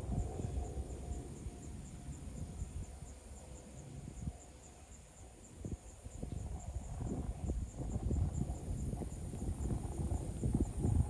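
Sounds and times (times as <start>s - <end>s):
thunder rumbling and crackling: 0.0s - 1.4s, 6.4s - 11.0s
faint high insect chirp: 0.0s - 11.0s.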